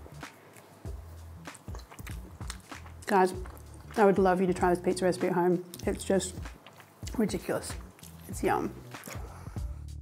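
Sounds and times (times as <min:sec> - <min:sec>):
person chewing with soft crunches: 0:00.5 - 0:04.0, 0:05.7 - 0:09.6.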